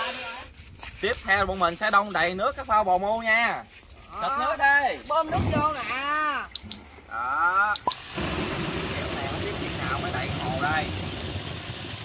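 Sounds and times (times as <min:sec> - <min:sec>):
water gushing from hose: 0:07.9 - 0:12.0
person speaking: 0:09.9 - 0:11.0.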